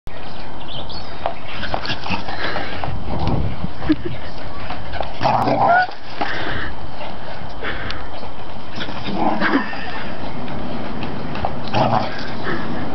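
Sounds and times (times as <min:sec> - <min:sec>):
steady rushing noise: 0:06.6 - 0:12.9.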